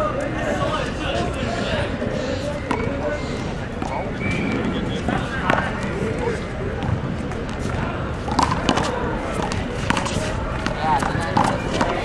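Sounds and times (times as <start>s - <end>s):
city rumble: 0.0s - 12.0s
distant voices talking: 0.0s - 12.0s
handball bouncing on concrete: 2.4s - 12.0s.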